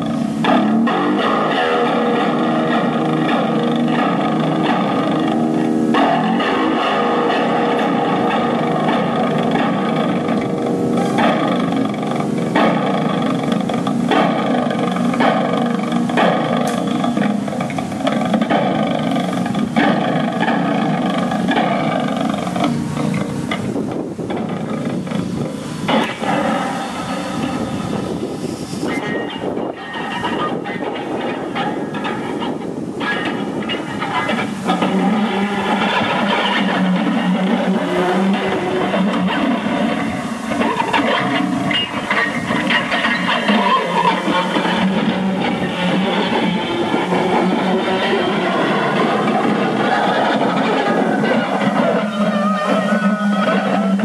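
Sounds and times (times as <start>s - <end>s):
electric guitar improvisation: 0.0s - 54.0s.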